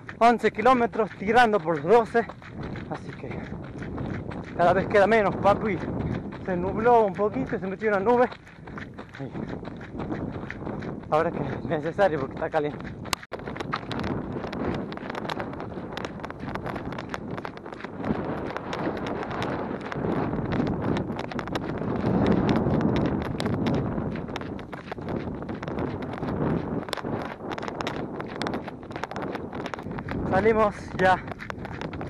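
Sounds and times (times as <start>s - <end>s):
running footsteps on gravel: 0.0s - 32.0s
wind buffeting microphone: 0.0s - 32.0s.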